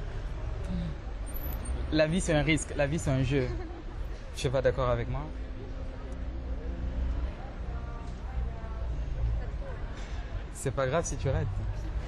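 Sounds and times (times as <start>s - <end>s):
faint voices: 0.0s - 12.0s
low rumble of vehicle engines: 0.0s - 12.0s.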